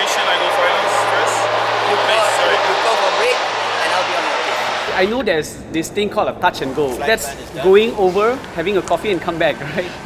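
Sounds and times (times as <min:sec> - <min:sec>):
background rush: 0:00.0 - 0:10.0
low hum: 0:00.0 - 0:10.0.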